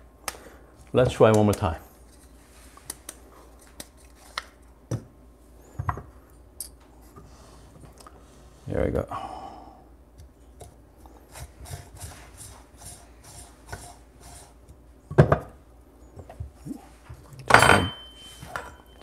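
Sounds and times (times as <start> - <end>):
coffee grounds scraping in metal: 11.2 - 14.6
metal clatter with high ring: 17.5 - 19.0.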